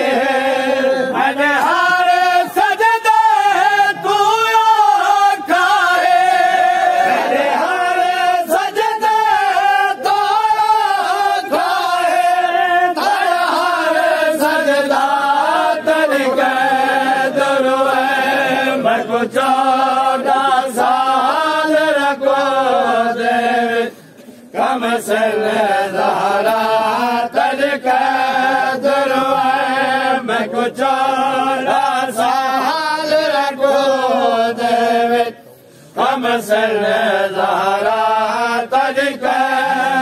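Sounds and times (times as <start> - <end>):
men chanting in unison: 0.0 - 40.0.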